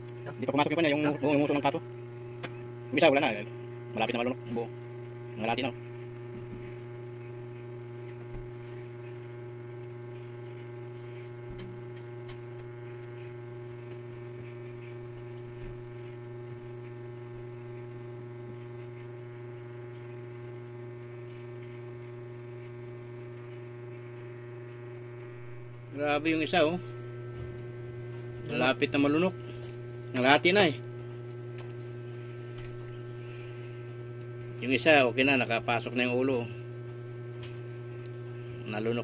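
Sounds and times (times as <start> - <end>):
electrical hum: 0.0 - 39.0.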